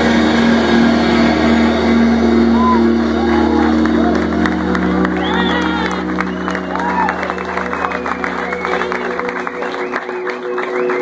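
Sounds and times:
distorted electric guitars chord: 0.0s - 10.4s.

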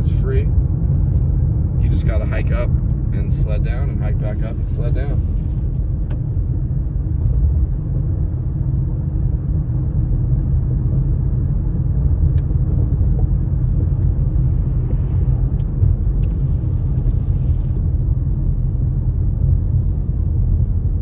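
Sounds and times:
car road and engine noise: 0.0s - 21.0s.

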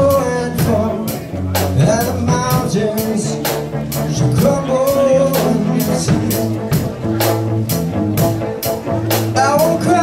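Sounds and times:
person singing: 0.0s - 6.9s, 9.1s - 10.0s
drum kit beat: 0.0s - 10.0s
electric guitar: 0.0s - 10.0s.

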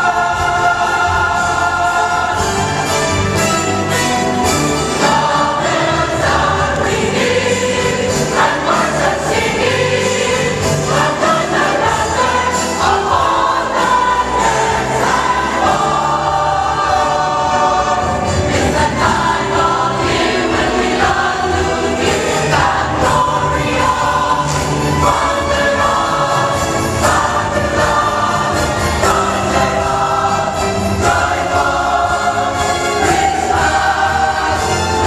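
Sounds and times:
large choir singing: 0.0s - 35.0s.

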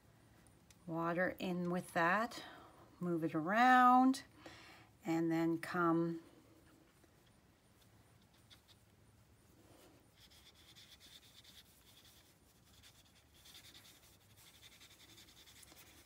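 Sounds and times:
brush bristles stroking cardstock: 10.1s - 16.0s.

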